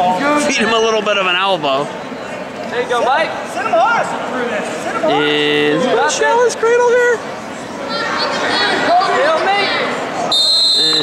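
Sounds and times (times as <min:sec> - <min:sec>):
referee's whistle: 0:10.3 - 0:11.0.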